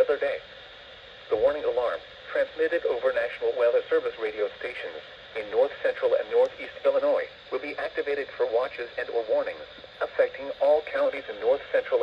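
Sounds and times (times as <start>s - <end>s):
speech through small radio speaker: 0.0s - 0.4s, 1.3s - 12.0s.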